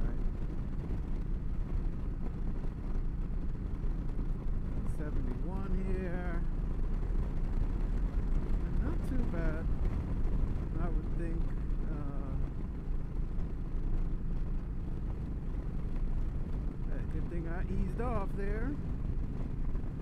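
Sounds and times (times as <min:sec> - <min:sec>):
motorcycle engine drone: 0:00.0 - 0:20.0
wind rush: 0:00.0 - 0:20.0.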